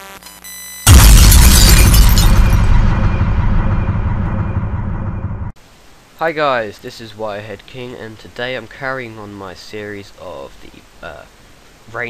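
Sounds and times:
explosion-like boom: 0.9s - 5.6s.

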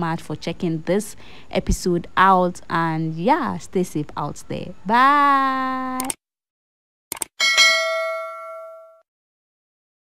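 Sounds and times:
bell ding: 7.4s - 9.0s.

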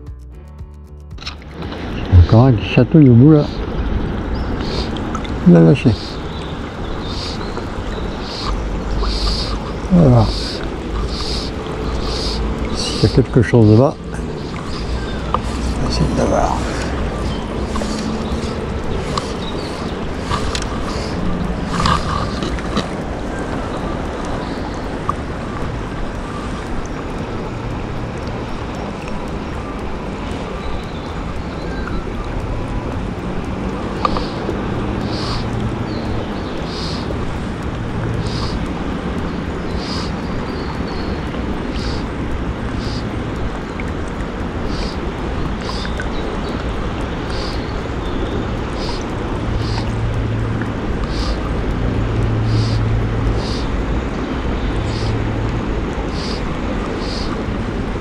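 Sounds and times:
river current rushing: 1.2s - 58.0s
wind buffeting microphone: 1.4s - 58.0s
faint high ticks: 3.0s - 58.0s.

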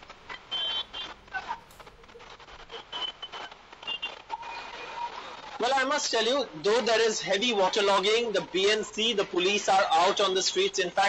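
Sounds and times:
street traffic: 0.0s - 2.8s.

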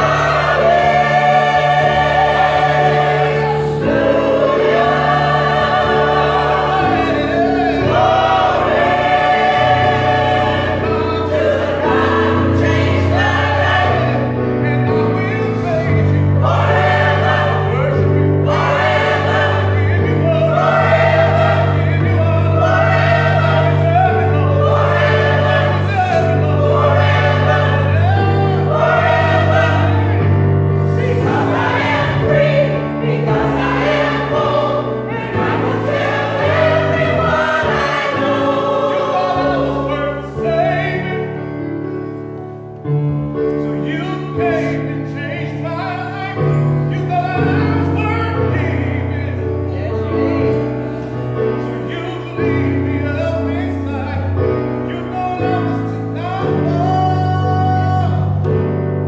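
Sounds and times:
gospel choir singing: 0.0s - 59.0s.

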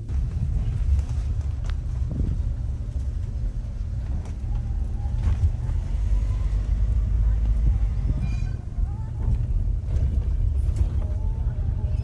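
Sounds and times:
car driving heard from inside: 0.0s - 12.0s.

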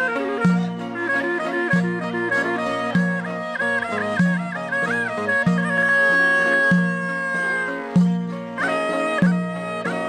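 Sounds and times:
plucked lute note: 0.0s - 10.0s.

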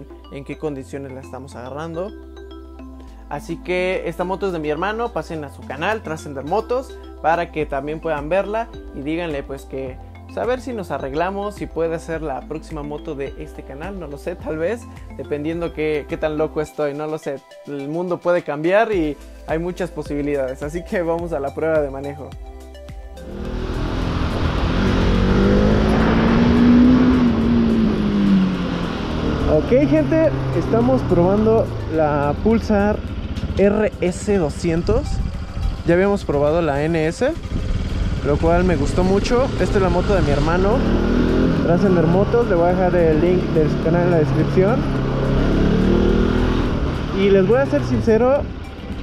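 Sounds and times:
motorcycle engine accelerating: 23.2s - 49.0s.

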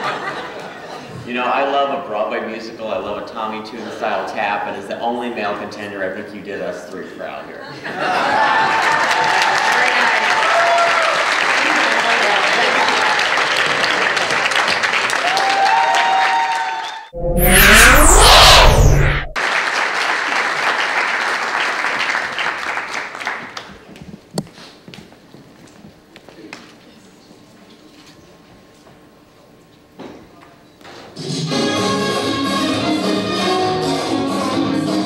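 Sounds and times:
whoops: 8.4s - 11.1s, 15.2s - 17.0s
audience applauding: 8.4s - 17.1s, 19.4s - 23.7s
whooshing transition effect: 17.2s - 19.4s.

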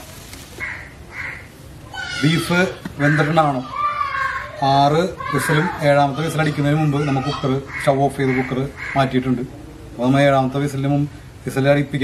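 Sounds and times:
rasping animal calls: 7.3s - 9.1s.

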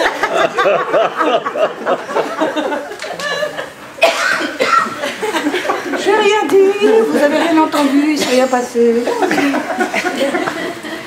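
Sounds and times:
audience laughing: 0.0s - 4.0s, 4.8s - 11.0s
sharp cough-like burst: 4.0s - 5.2s.

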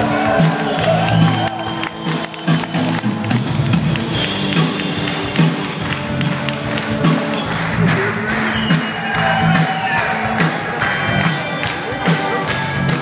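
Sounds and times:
live rock band playing: 0.0s - 13.0s
steady drumbeat: 0.0s - 13.0s.

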